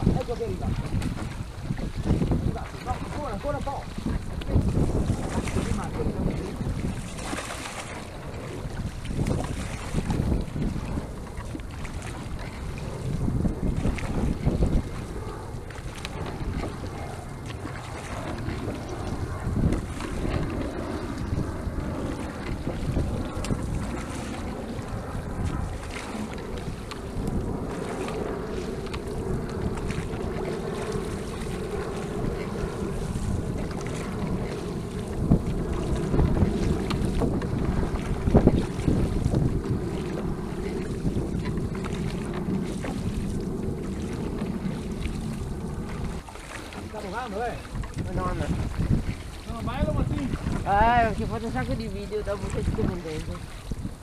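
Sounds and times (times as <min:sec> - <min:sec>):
water rushing along boat hull: 0:00.0 - 0:54.0
wind buffeting microphone: 0:00.0 - 0:54.0.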